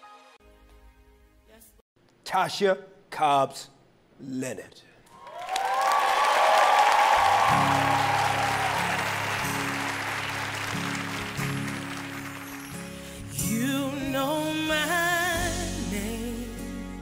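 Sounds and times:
people cheering: 5.1s - 12.8s
audience applauding: 5.1s - 13.2s.

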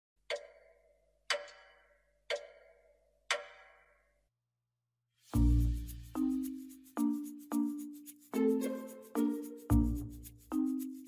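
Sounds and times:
clock ticking: 0.2s - 3.9s.

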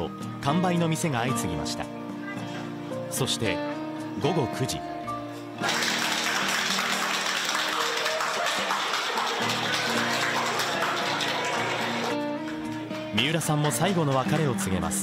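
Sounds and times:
guitar music: 0.0s - 15.0s
crowd applauding: 5.6s - 14.6s.

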